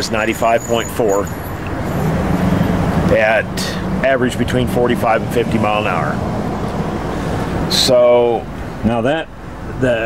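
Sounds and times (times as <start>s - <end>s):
man speaking: 0.0s - 1.3s, 3.1s - 6.2s, 7.7s - 10.0s
road traffic hum: 0.0s - 10.0s.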